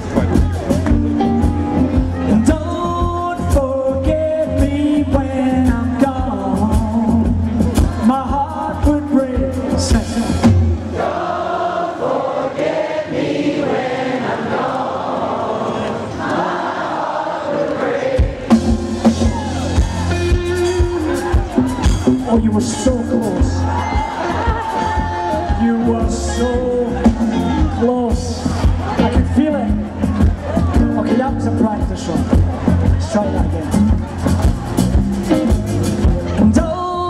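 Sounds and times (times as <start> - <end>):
bass and drums: 0.0 - 11.0, 18.2 - 37.0
crowd singing: 0.0 - 35.2
singer singing: 2.0 - 32.2, 36.2 - 37.0.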